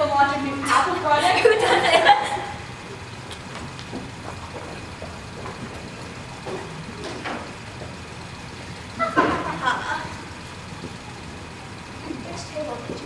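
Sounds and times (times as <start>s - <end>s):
steady low hum: 0.0s - 13.0s
ticks and shuffles of people moving: 0.0s - 13.0s.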